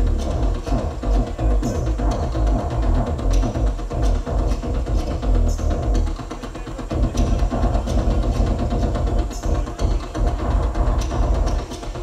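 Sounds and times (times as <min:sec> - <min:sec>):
deep bass: 0:00.0 - 0:12.0
loud electronic music: 0:00.0 - 0:12.0.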